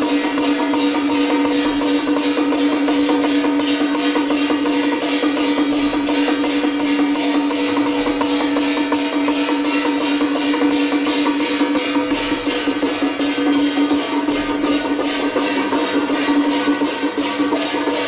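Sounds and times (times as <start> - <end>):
fast light percussion strikes: 0.0 - 18.0
steady held tone: 0.0 - 18.0.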